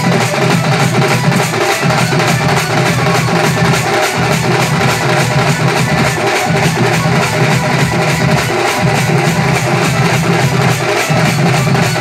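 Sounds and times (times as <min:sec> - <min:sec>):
hand drums beating fast rhythm: 0:00.0 - 0:12.0
held melody: 0:00.0 - 0:12.0.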